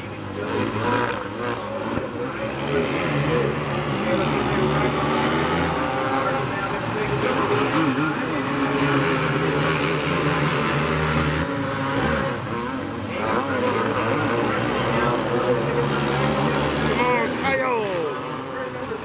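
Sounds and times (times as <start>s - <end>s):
kart engines racing: 0.0s - 19.0s.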